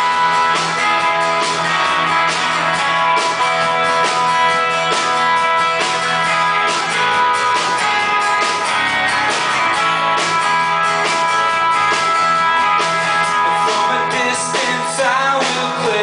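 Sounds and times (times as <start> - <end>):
acoustic guitar strumming: 0.0 - 16.0
bass guitar: 0.0 - 16.0
electric guitar: 0.0 - 16.0.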